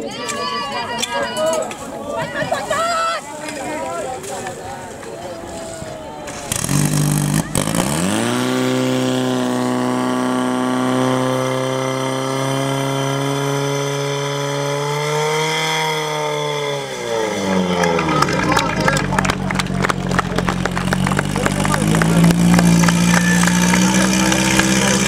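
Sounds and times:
fire pump engine revving: 6.3s - 25.0s.

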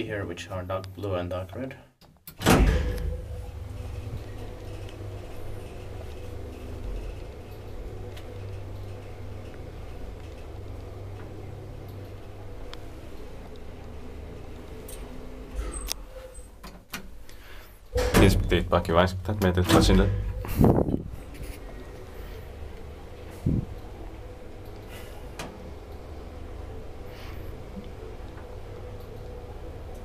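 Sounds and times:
elevator clicks: 2.3s - 13.2s, 17.9s - 21.0s
elevator starting thump: 2.4s - 10.2s, 17.9s - 21.8s
elevator hum and whine: 2.4s - 30.0s.

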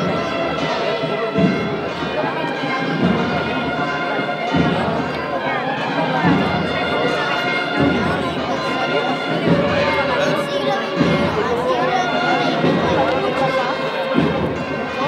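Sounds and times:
crowd chatter: 0.0s - 15.0s
wind instruments sustained notes: 0.0s - 15.0s
low drum beat: 6.1s - 15.0s.

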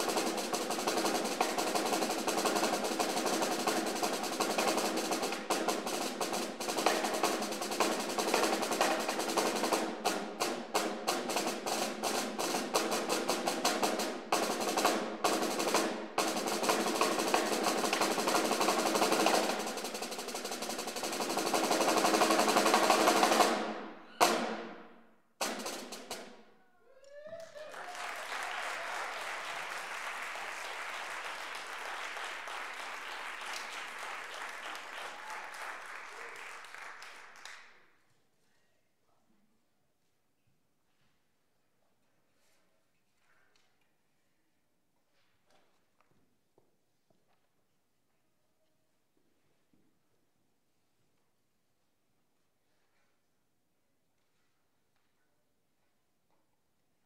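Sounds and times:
snare drum strokes and rolls: 0.0s - 26.5s
audience applause: 27.1s - 37.7s.

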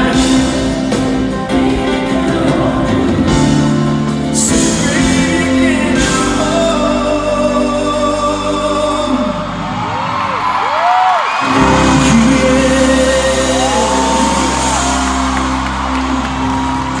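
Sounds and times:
male singer: 0.0s - 9.8s, 11.4s - 15.6s
live pop ballad: 0.0s - 17.0s
audience whoops: 9.6s - 12.3s, 13.2s - 17.0s.

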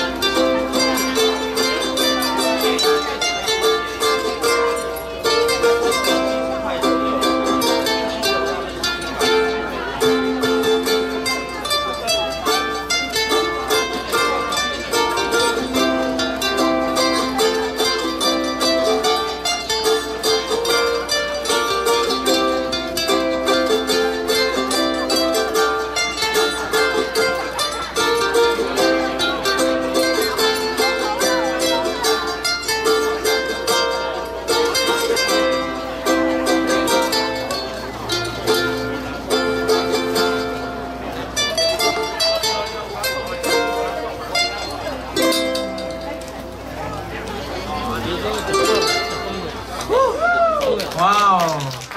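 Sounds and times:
ukuleles strumming: 0.0s - 51.9s.

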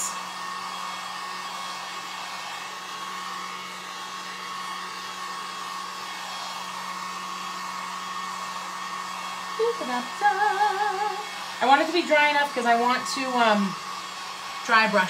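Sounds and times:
heat gun blowing with whine: 0.0s - 15.0s.

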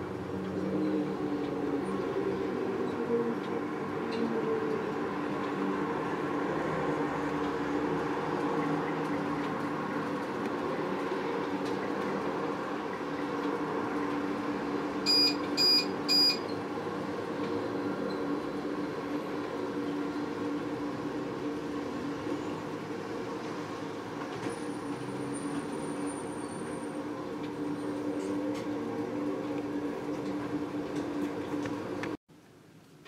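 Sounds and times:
machine hum: 0.0s - 32.2s
high-pitched electronic beeps: 15.0s - 16.6s.

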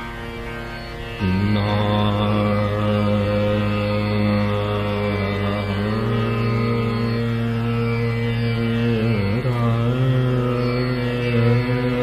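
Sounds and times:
tanpura drone: 0.0s - 12.0s
man singing long notes: 1.2s - 12.0s.

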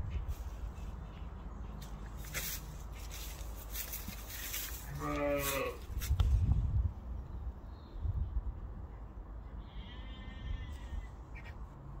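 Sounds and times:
steady low rumble: 5.7s - 9.6s
drawn-out animal call: 9.6s - 11.6s.

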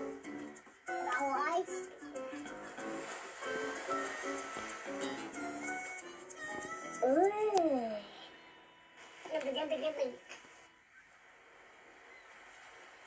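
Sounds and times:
cartoon music through tv speaker: 0.0s - 8.5s.

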